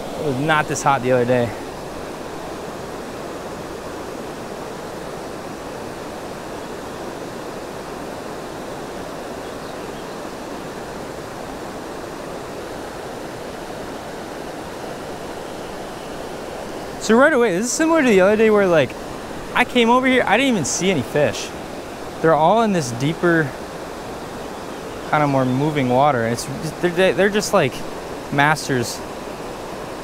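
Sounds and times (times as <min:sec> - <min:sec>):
creek water over rocks: 0:00.0 - 0:30.0.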